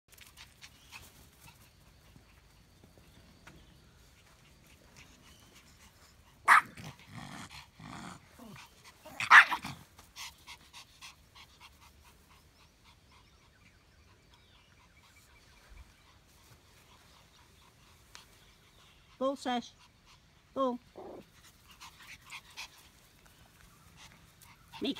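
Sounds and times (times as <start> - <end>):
dogs growling: 6.3 - 9.9
dogs barking: 6.5 - 6.9, 9.2 - 9.8.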